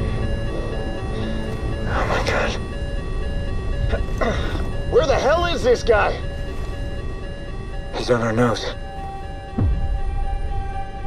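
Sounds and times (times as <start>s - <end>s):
film score music with held notes: 0.0s - 11.0s
low steady jet rumble: 0.0s - 11.0s.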